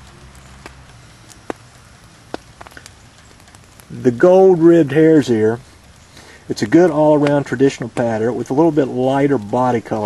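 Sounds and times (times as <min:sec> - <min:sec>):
low hum: 0:00.0 - 0:04.0
sharp irregular clicks: 0:00.0 - 0:04.6.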